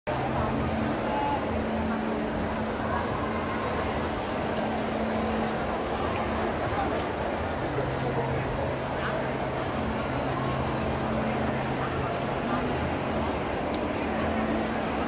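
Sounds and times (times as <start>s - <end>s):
crowd chattering: 0.1s - 15.0s.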